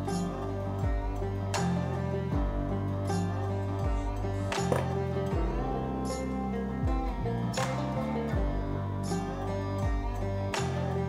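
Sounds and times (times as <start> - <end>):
plucked guitar-like instrument: 0.0 - 11.0
sustained bass notes: 0.0 - 11.0.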